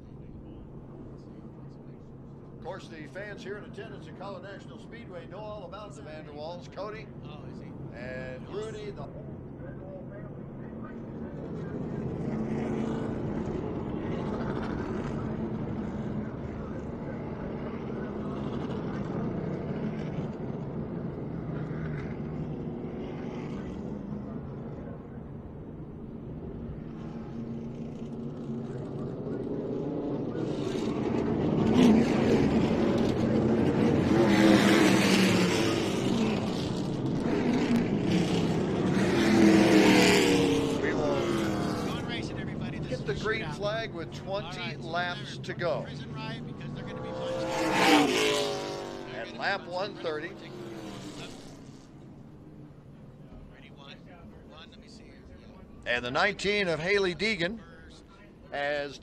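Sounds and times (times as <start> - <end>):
car engine droning: 0.0 - 59.0
race cars passing: 0.4 - 59.0.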